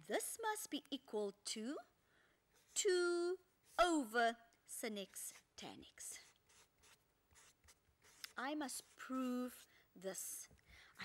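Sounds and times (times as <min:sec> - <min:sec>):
marker pen scratching on board: 0:04.9 - 0:09.7.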